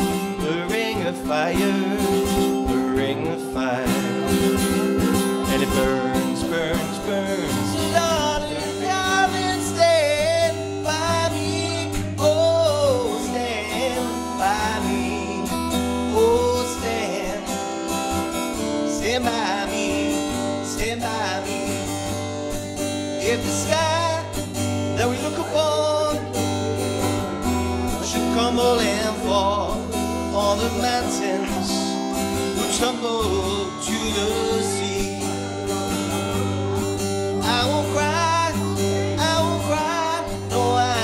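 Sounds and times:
acoustic guitar strumming: 0:00.0 - 0:41.0
man singing: 0:00.0 - 0:41.0.

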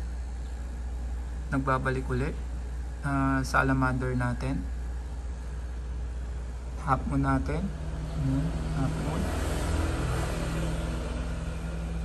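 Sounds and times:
steady low hum: 0:00.0 - 0:12.0
passing vehicle rushing: 0:08.6 - 0:12.0.

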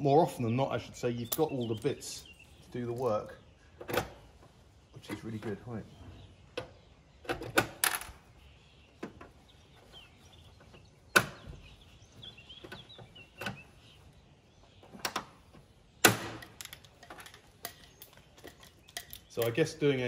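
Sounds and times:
hand tools clicking on metal: 0:16.4 - 0:19.7.

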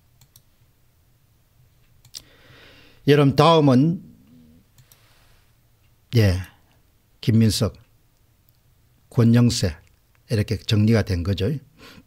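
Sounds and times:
faint computer clicks: 0:00.2 - 0:00.5, 0:04.7 - 0:05.1.

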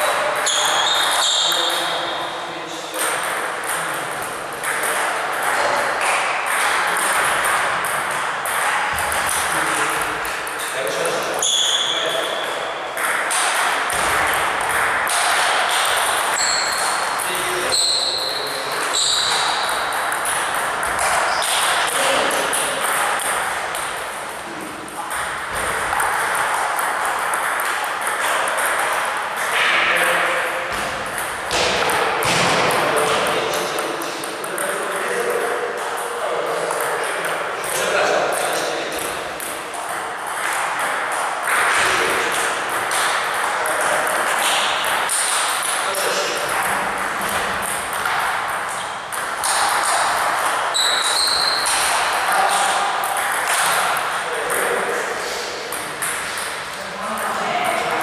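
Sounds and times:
table tennis balls clicking: 0:03.0 - 0:54.8, 0:55.7 - 0:57.3.

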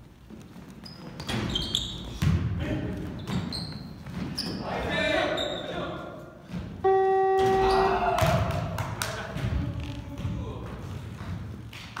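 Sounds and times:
scoreboard buzzer: 0:06.8 - 0:08.2
players calling out: 0:06.8 - 0:08.8.

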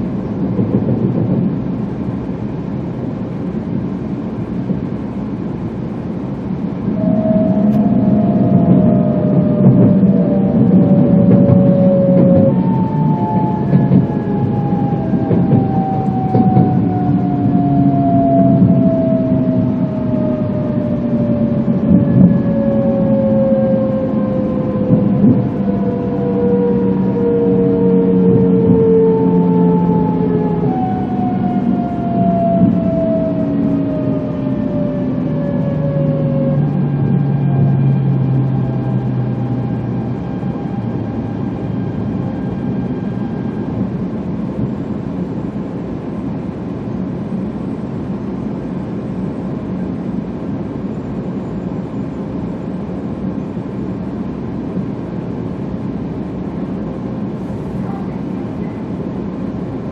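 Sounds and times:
train car rolling rumble: 0:00.0 - 0:59.9
train traction motors whining: 0:05.2 - 0:46.0.

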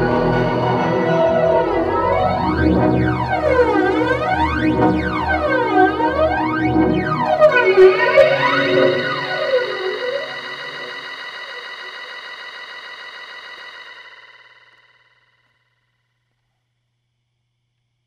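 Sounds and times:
synthesizer chord sweeping in pitch: 0:00.0 - 0:13.0.

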